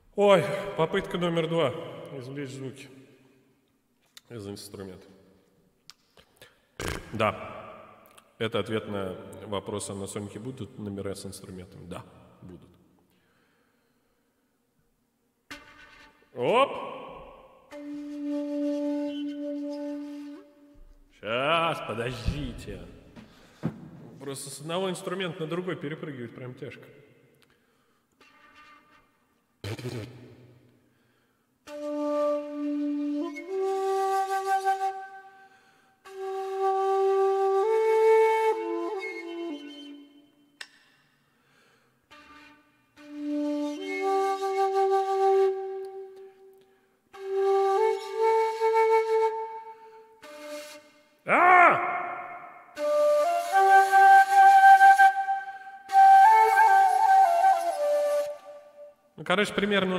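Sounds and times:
breathy bamboo flute notes: 0:15.5 - 0:23.6, 0:31.0 - 0:40.8, 0:41.4 - 0:59.1.

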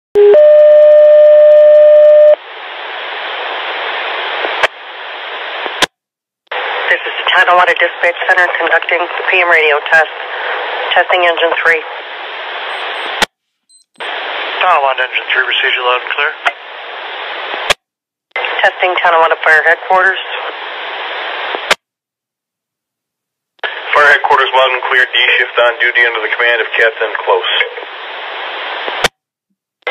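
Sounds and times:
radio static hiss: 0:02.3 - 0:05.9, 0:06.5 - 0:13.3, 0:14.0 - 0:17.8, 0:18.4 - 0:21.8, 0:23.6 - 0:29.1
radio alert tone: 0:12.6 - 0:13.2.

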